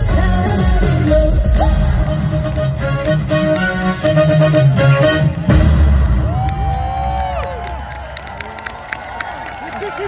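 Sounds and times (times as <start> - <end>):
audience cheering and whooping: 5.9 - 10.0.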